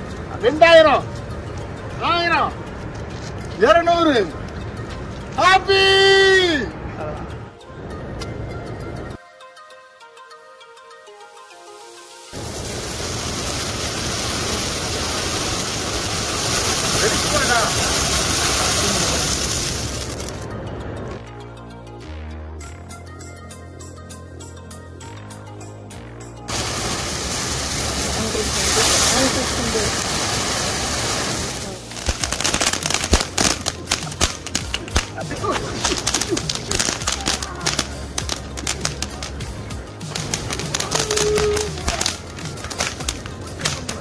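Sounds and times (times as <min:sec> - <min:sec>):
fountain firework hissing: 0:11.7 - 0:20.4, 0:26.5 - 0:44.0.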